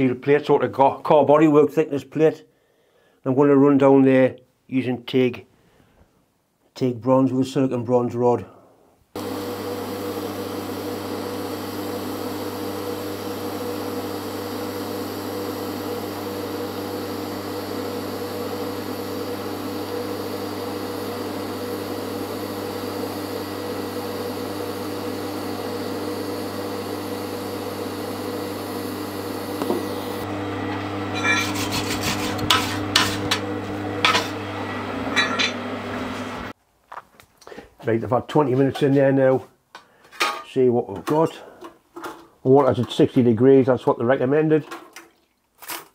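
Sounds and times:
welding arc humming: 9.2s - 36.5s.

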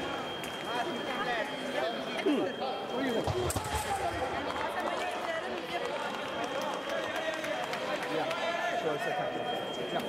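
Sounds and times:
thin steady high tone: 0.0s - 3.3s, 8.8s - 10.0s
overlapping voices echoing in a hall: 0.0s - 10.0s.

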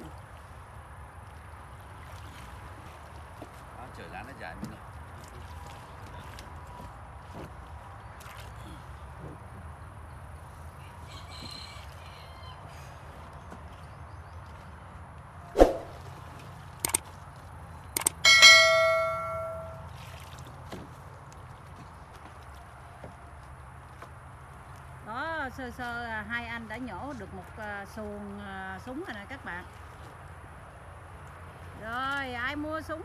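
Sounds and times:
faint outdoor background noise: 0.0s - 33.0s
quick clicks: 16.8s - 17.0s, 18.0s - 18.2s
bright bell ding: 18.0s - 19.8s.

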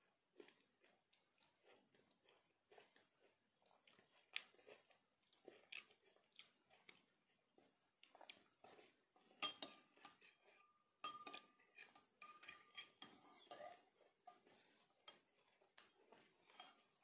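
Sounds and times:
metal spoon clinking glass: 11.0s - 11.5s, 12.2s - 13.8s.

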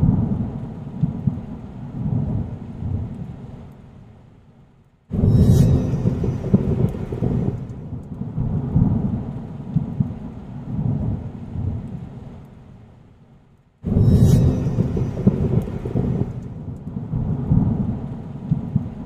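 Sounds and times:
loud boom: 5.1s - 8.0s, 13.9s - 16.8s
deep rumbling noise: 5.1s - 11.9s, 13.8s - 19.0s.

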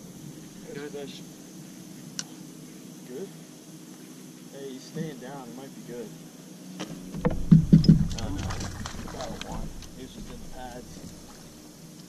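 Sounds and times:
hollow knocks on boat deck: 6.8s - 11.6s
low rumble: 7.2s - 11.8s.

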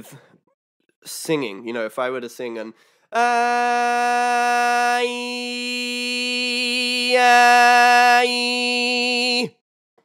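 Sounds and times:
man singing a long note: 3.2s - 9.6s.

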